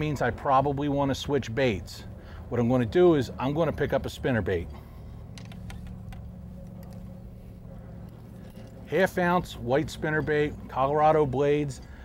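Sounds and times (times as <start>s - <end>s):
steady low hum: 0.0s - 12.0s
fishing rod clicks and knocks: 5.3s - 7.1s.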